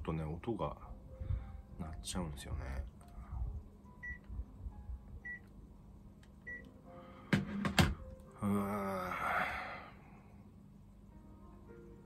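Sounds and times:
man sighing: 8.4s - 10.0s.

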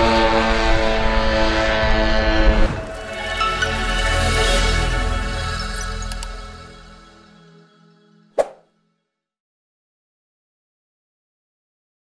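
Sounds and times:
outro music held notes: 0.4s - 8.3s
mouse-click sound effect: 8.4s - 8.6s.

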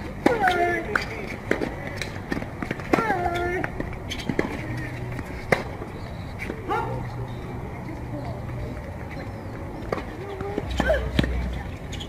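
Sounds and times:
racquets hitting tennis balls: 0.0s - 7.3s, 8.8s - 12.0s.

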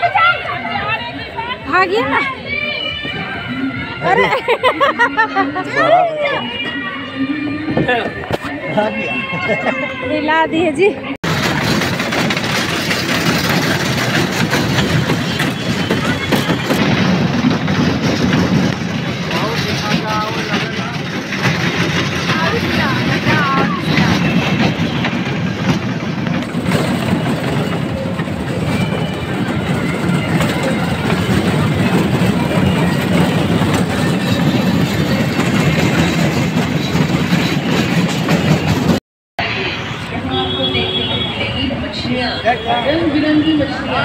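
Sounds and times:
voices: 0.0s - 11.2s, 14.1s - 16.8s, 18.8s - 25.9s, 27.2s - 36.1s, 39.4s - 44.0s
toy train rumbling on track: 11.2s - 39.0s.

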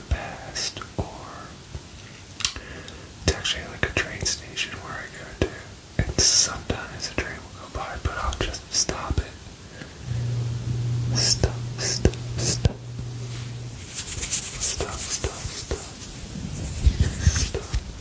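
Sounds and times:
man whispering: 0.0s - 1.6s, 3.2s - 9.4s, 11.1s - 12.9s, 14.5s - 16.0s, 16.9s - 17.8s
steady low hum: 2.6s - 18.0s.

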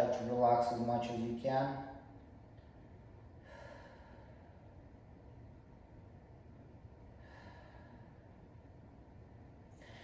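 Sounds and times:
low hum: 0.0s - 10.0s
faint breath: 3.4s - 4.8s, 7.1s - 8.5s, 9.7s - 10.0s.

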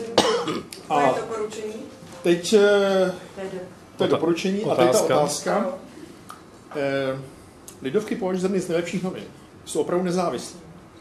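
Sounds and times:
short cough: 0.2s - 0.7s
man speaking: 4.0s - 5.9s.

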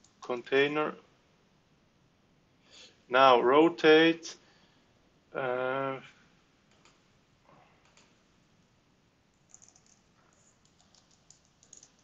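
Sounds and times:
computer keyboard typing: 6.7s - 7.0s, 7.8s - 8.1s, 9.4s - 12.0s.

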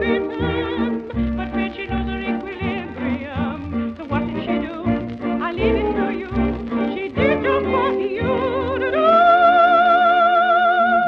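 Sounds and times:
vibrato lead melody: 0.0s - 10.2s.

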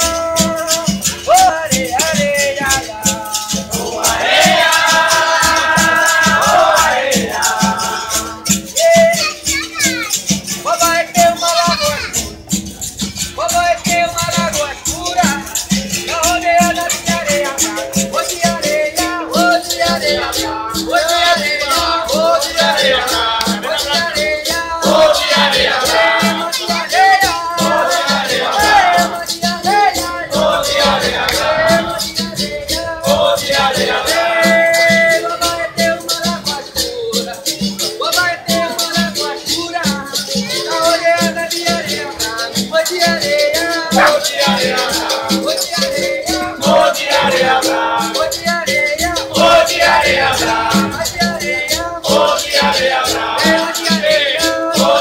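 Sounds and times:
hand drum: 0.0s - 55.0s
shaker rattles: 0.0s - 55.0s
tambourine: 0.0s - 55.0s
voices singing: 0.0s - 55.0s
berimbaus playing: 10.4s - 36.7s, 43.7s - 55.0s.

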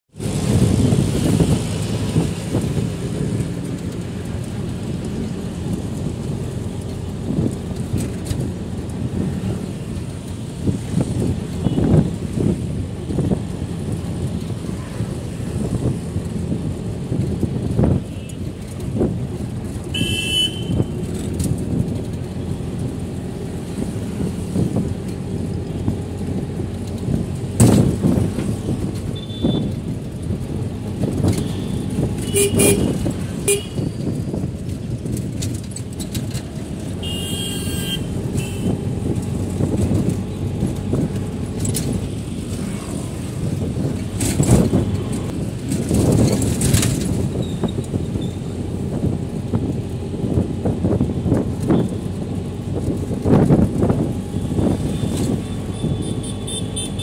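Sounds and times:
vehicle engine and road rumble: 0.0s - 57.0s
car horn toot: 19.9s - 21.0s, 29.2s - 29.7s, 31.4s - 33.9s, 37.0s - 38.8s, 54.9s - 57.0s.

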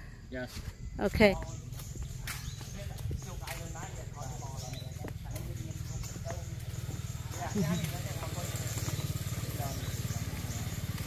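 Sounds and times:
distant people talking: 0.9s - 11.0s.

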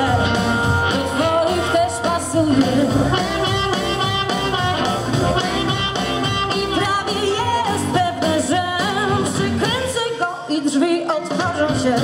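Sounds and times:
harmonica: 0.0s - 7.8s
blues-rock band playing: 0.0s - 10.2s.

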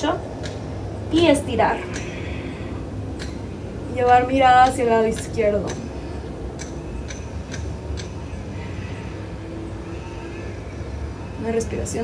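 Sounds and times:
faint hum: 0.0s - 12.0s
low background rumble: 0.0s - 12.0s.

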